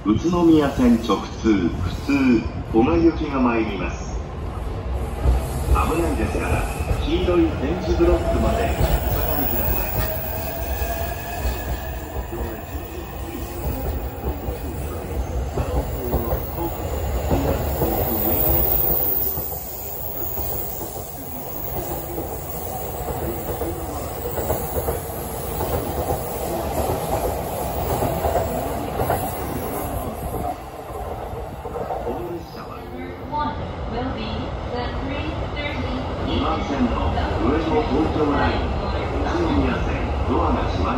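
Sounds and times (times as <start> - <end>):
train wheels rumbling on rail: 0.0 - 36.2.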